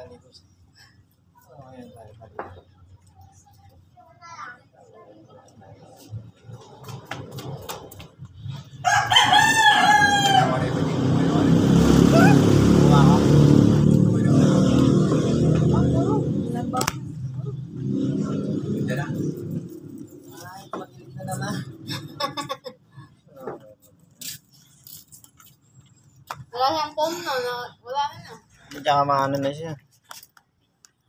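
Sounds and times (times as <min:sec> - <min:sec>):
rooster crowing: 0:08.8 - 0:11.2
loud low rumble: 0:10.4 - 0:20.2.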